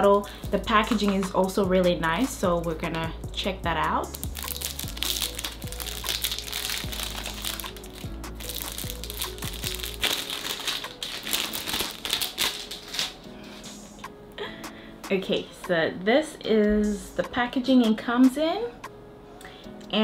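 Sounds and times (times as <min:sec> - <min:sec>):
soft background music: 0:00.0 - 0:20.0
cellophane wrapper crinkling: 0:04.1 - 0:13.6.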